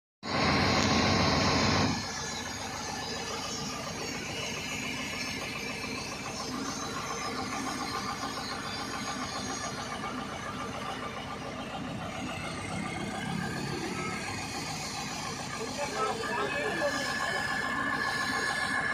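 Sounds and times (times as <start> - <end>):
diesel engine idling: 0.3 - 18.9.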